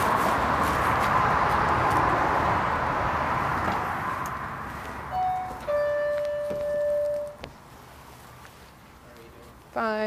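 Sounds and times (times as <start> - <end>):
two-note door entry chime: 5.2 - 7.4.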